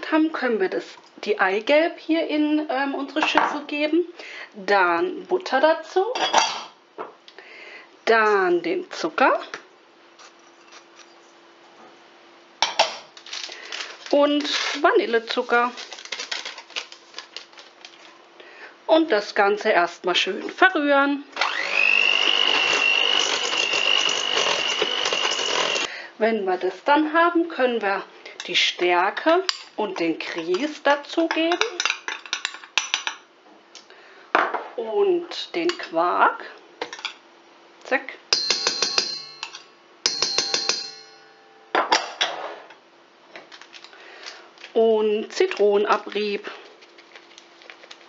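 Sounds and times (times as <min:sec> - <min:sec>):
paper packet crinkling: 0:13.2 - 0:18.2, 0:46.0 - 0:48.0
metal bowl ringing: 0:38.3 - 0:41.8.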